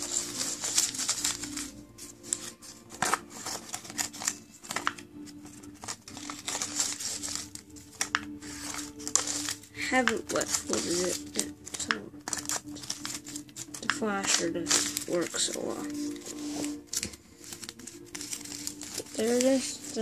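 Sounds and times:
paper crinkling and rustling: 0:00.0 - 0:20.0.

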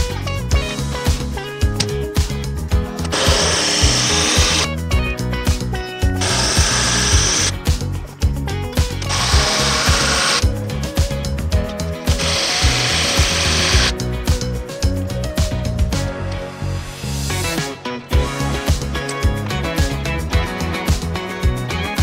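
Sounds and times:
background music with beat: 0:00.0 - 0:22.0
power drill whining: 0:03.1 - 0:04.7, 0:06.2 - 0:07.5, 0:09.0 - 0:10.4, 0:12.1 - 0:13.9.

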